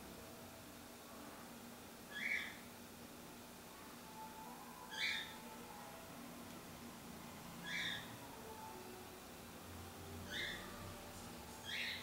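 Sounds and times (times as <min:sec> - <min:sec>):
faint room noise: 0:00.0 - 0:12.0
bird chirping: 0:07.6 - 0:08.1, 0:10.3 - 0:10.7, 0:11.6 - 0:12.0.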